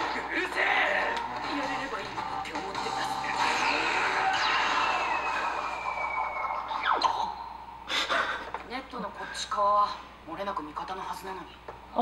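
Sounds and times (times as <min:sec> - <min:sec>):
dialogue: 0:00.0 - 0:12.0
high tone sliding down: 0:04.0 - 0:07.8.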